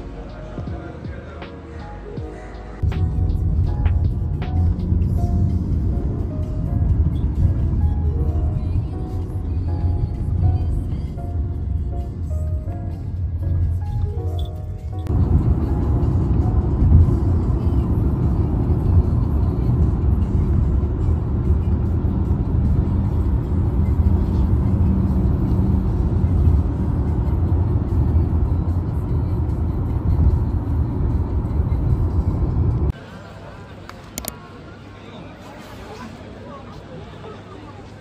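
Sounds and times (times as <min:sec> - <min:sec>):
car road noise rumble: 0:02.8 - 0:33.0.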